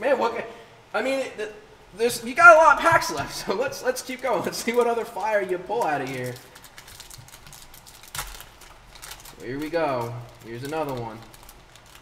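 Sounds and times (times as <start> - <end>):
foil wrapper crinkling: 3.0 - 12.0.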